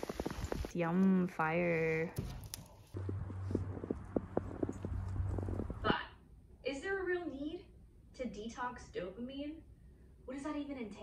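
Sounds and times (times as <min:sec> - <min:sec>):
footsteps crunching through snow: 0:00.0 - 0:00.7
steady low hum: 0:02.8 - 0:07.0.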